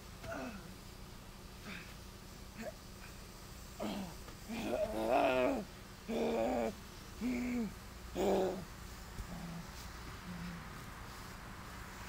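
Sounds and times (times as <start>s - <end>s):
person groaning: 0.2s - 0.7s, 3.8s - 8.7s.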